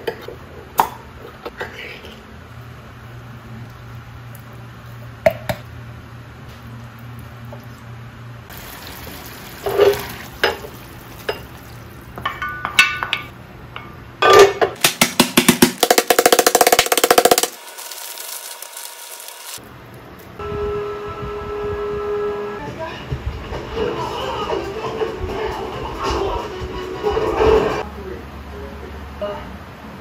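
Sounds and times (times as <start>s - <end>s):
mallet pounding food in bag: 14.8s - 18.5s.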